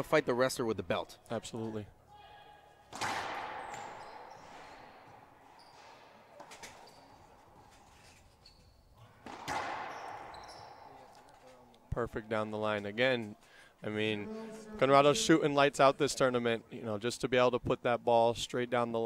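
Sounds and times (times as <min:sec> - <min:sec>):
hard racquet hit echoing: 0:02.9 - 0:06.5, 0:09.2 - 0:10.4.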